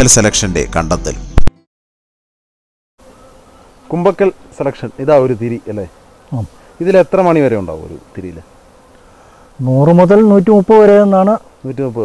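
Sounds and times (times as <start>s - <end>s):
men talking: 0.0s - 1.2s, 3.9s - 8.5s, 9.5s - 12.0s.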